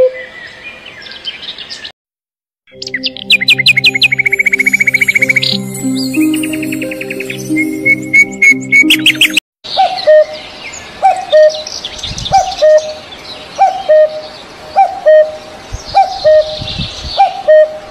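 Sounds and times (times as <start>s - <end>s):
faint birds singing: 0.1s - 1.9s, 2.7s - 17.9s
soft background music: 2.7s - 9.4s
cuckoo calling: 2.8s - 10.4s, 11.0s - 11.7s, 12.3s - 13.0s, 13.6s - 16.6s, 17.2s - 17.9s.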